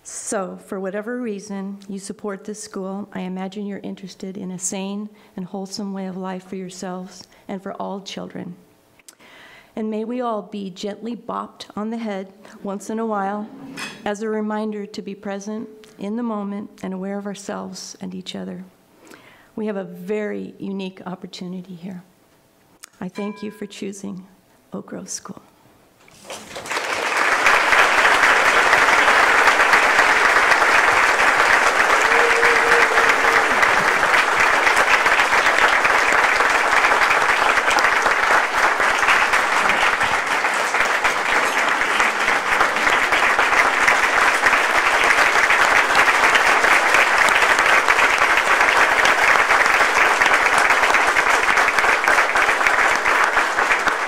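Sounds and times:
audience applauding: 0:26.1 - 0:54.0.

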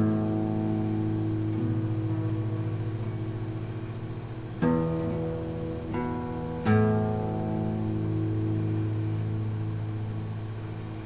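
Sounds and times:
acoustic guitar chord strummed: 0:00.0 - 0:11.0.

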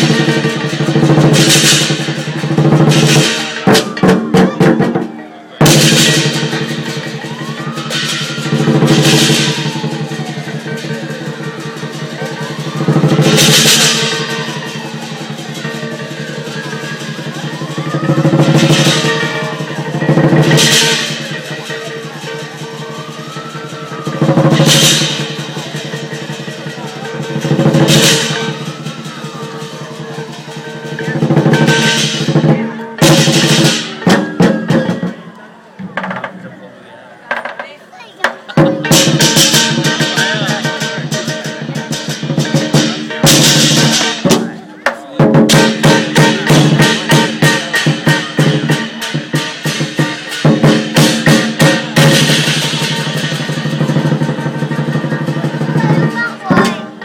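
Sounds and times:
clashing cymbals: 0:00.0 - 0:04.0, 0:05.7 - 0:35.2, 0:38.6 - 0:44.6, 0:45.3 - 0:57.0
drum beaten in rapid roll: 0:00.0 - 0:36.4, 0:38.2 - 0:57.0
gong ringing: 0:15.6 - 0:35.2.

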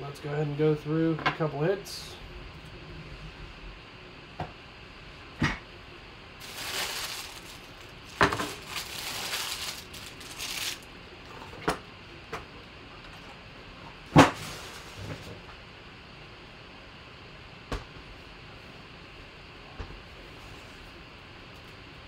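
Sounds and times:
foil wrappers crinkling: 0:06.4 - 0:10.9.

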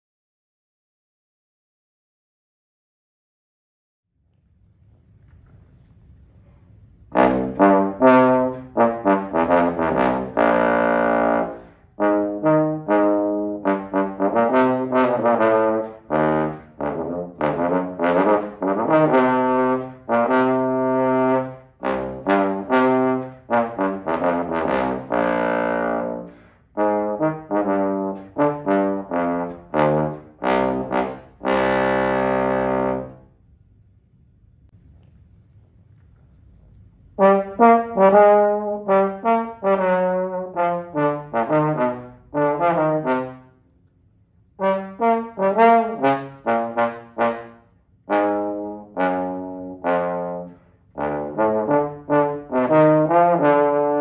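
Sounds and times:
bass trombone playing jazz: 0:07.0 - 0:33.4, 0:37.1 - 0:43.6, 0:44.6 - 0:54.0.

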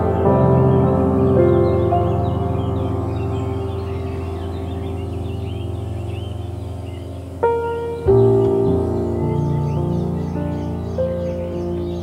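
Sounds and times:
faint bird chirps: 0:00.0 - 0:12.0
soft ambient music: 0:00.0 - 0:12.0.

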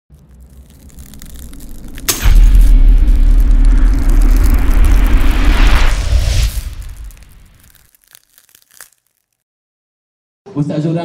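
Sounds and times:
faint clicks and crackles: 0:00.1 - 0:09.4.

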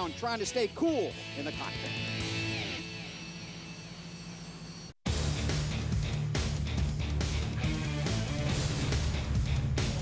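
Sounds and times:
faint high whine: 0:02.7 - 0:05.0.

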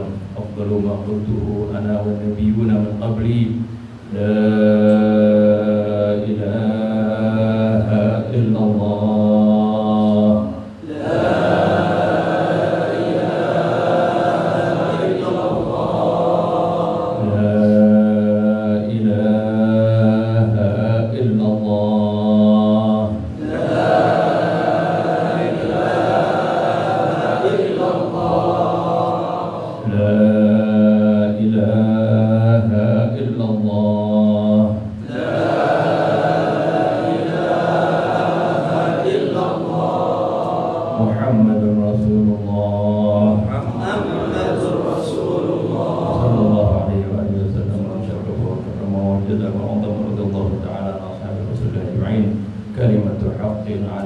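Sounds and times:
men chanting in unison: 0:00.0 - 0:54.0.

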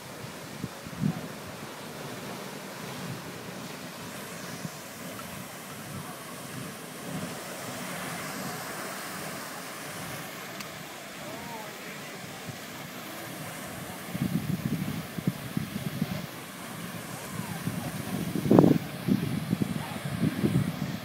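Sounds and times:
wind noise on microphone: 0:00.0 - 0:10.8, 0:12.2 - 0:21.0
geyser rushing water and steam: 0:00.0 - 0:21.0.

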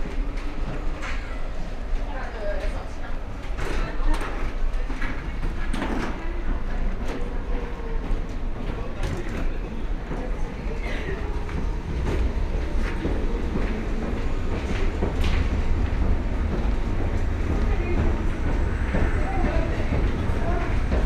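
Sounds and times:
footsteps: 0:03.4 - 0:21.0
steady low rumble: 0:07.8 - 0:21.0.

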